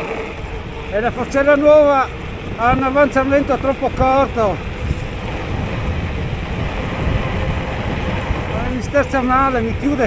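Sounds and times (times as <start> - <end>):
bike tyre rumble on asphalt: 0.0 - 10.0
wind rushing on microphone: 0.0 - 10.0.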